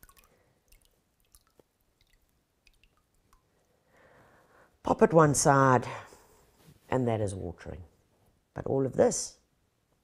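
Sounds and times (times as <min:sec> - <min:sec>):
water dripping into water: 0:00.0 - 0:03.8.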